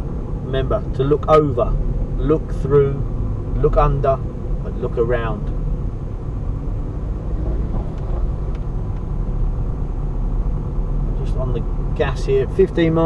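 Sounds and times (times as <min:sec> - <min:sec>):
car engine and tyre rumble: 0:00.0 - 0:13.0.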